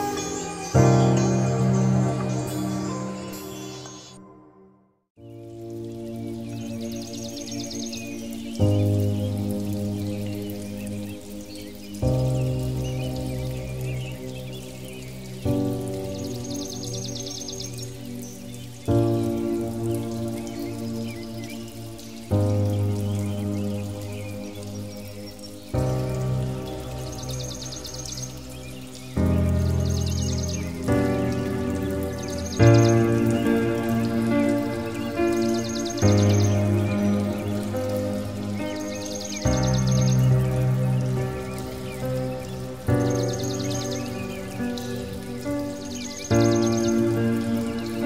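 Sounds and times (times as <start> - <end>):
water drops falling: 5.2 - 48.0.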